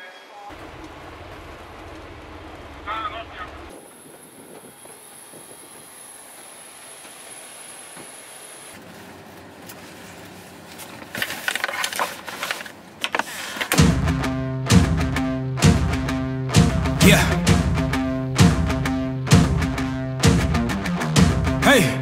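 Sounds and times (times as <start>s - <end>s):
steady high whine: 0.5s - 8.8s
vehicle interior rumble: 0.5s - 13.8s.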